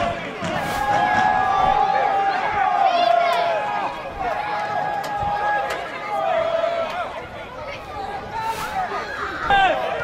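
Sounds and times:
footballers shouting: 0.0s - 10.0s.

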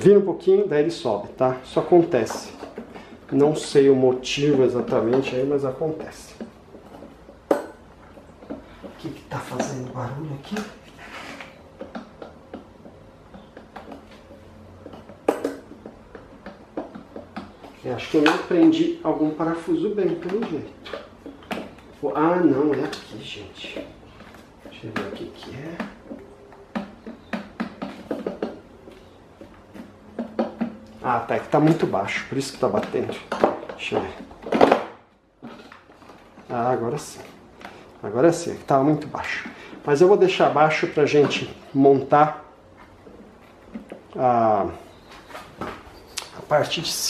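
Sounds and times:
plastic clicks and knocks: 1.8s - 37.8s.

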